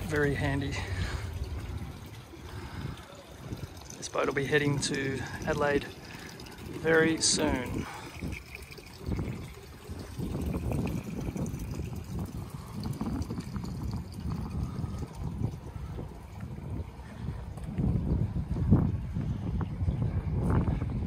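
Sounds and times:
water moving around hull: 0:00.0 - 0:19.8
wind buffeting microphone: 0:00.0 - 0:21.0.

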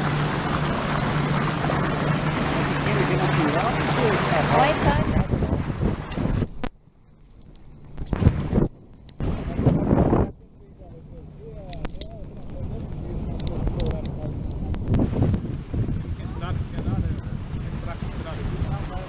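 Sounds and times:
wind buffeting microphone: 0:00.0 - 0:06.7, 0:07.7 - 0:19.0.

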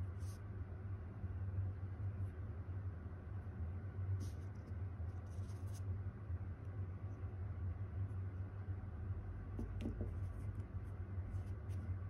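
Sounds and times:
steady low hum: 0:00.0 - 0:12.0
candles brushing paper pages: 0:04.2 - 0:05.8, 0:10.2 - 0:12.0.

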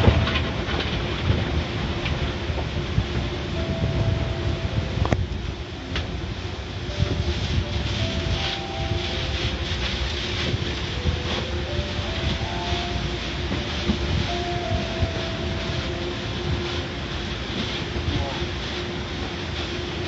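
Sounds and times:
mechanical rumble: 0:00.0 - 0:20.0
water spraying: 0:03.6 - 0:20.0
brushes scrubbing windshield: 0:07.2 - 0:20.0.

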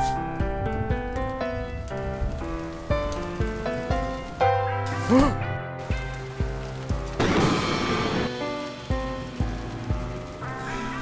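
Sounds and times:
heavy rain: 0:00.2 - 0:11.0.

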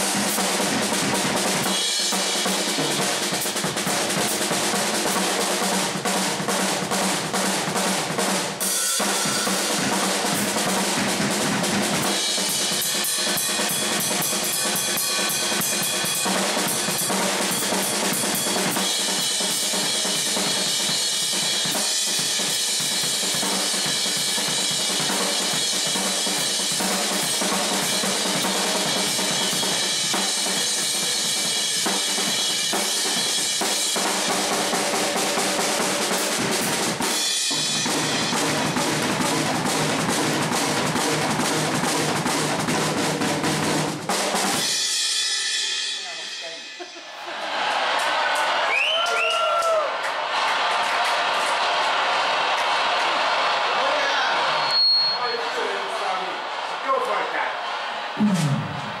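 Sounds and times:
drum kit playing: 0:00.0 - 0:48.6, 0:57.6 - 0:59.0
ringing cymbals: 0:08.6 - 0:09.8.

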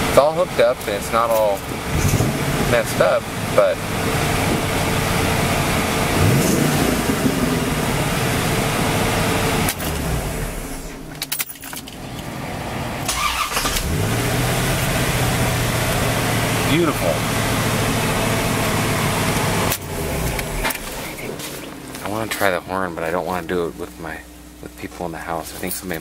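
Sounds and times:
car engine idling: 0:00.0 - 0:26.0
engine starting with key: 0:13.1 - 0:14.0.

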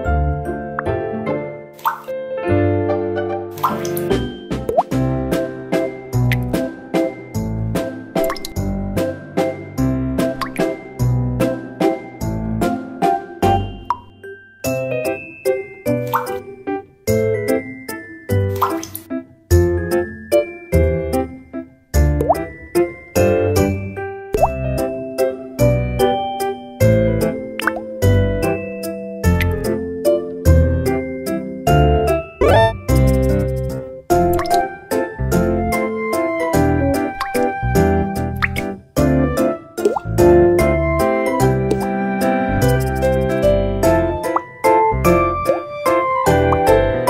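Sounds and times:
cheerful children's music: 0:00.0 - 0:47.0
popping sound effects: 0:32.4 - 0:33.2.

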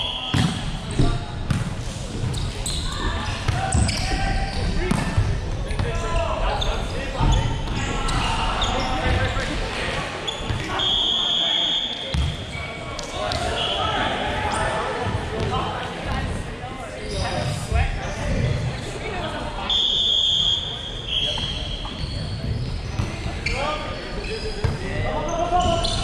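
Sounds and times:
shrill whistle: 0:00.0 - 0:00.4, 0:10.8 - 0:12.1, 0:19.7 - 0:22.3
players calling out: 0:02.3 - 0:15.7.

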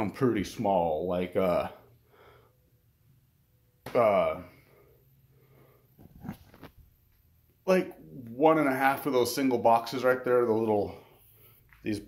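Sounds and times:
man's breath and mouth sounds: 0:04.6 - 0:06.9.

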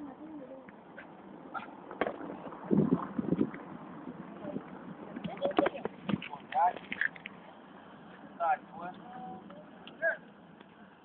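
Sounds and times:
people talking and calling out: 0:00.0 - 0:11.0.

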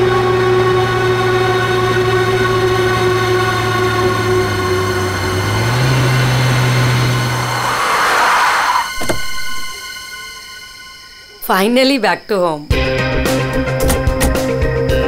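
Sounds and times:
car engine running: 0:00.0 - 0:09.7
background music drone: 0:00.0 - 0:15.0.

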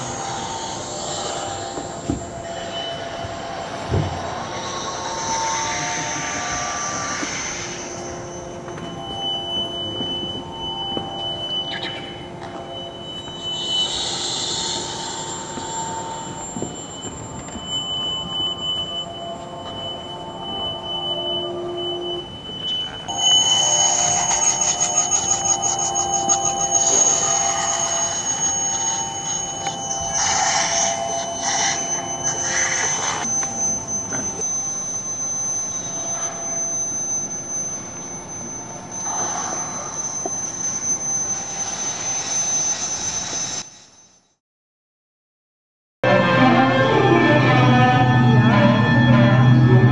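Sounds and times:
electronic synth music: 0:00.0 - 0:36.6, 0:46.0 - 0:49.9.

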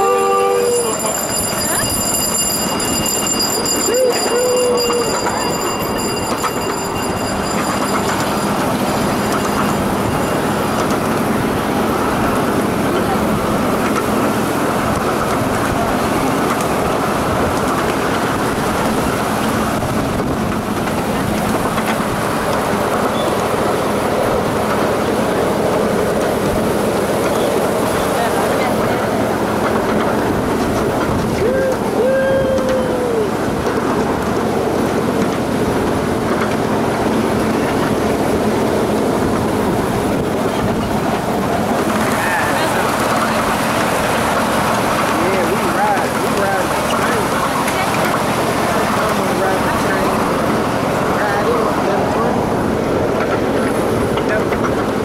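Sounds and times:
brief pitched tone: 0:00.0 - 0:10.4
small train wheels rumbling and rattling: 0:00.0 - 0:55.0.

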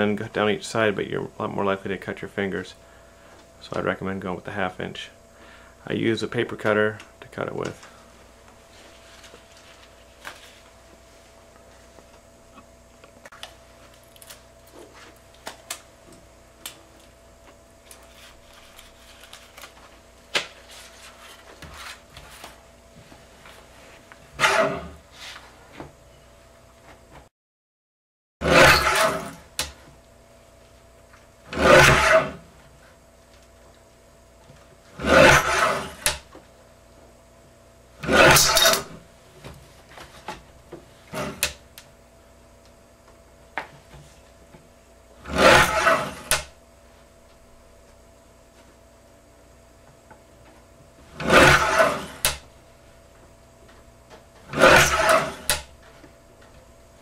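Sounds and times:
paper cutter shearing metal: 0:24.4 - 0:25.0, 0:28.4 - 0:29.7, 0:31.5 - 0:32.4, 0:35.0 - 0:36.2, 0:38.0 - 0:39.0, 0:41.1 - 0:41.6, 0:45.2 - 0:46.5, 0:51.1 - 0:52.4, 0:54.4 - 0:55.7.

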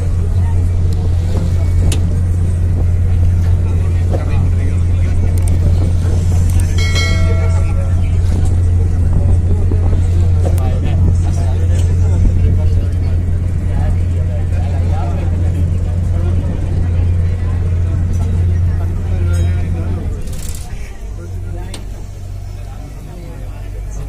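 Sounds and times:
indistinct voices talking: 0:00.0 - 0:24.0
ship engine drone: 0:00.0 - 0:24.0.

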